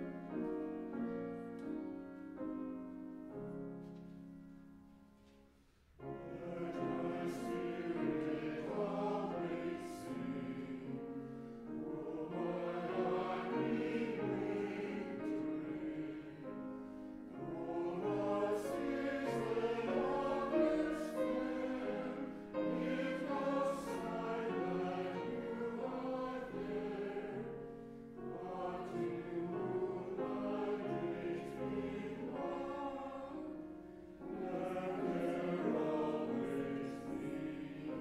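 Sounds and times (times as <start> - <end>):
choir singing a hymn: 6.0 - 38.0.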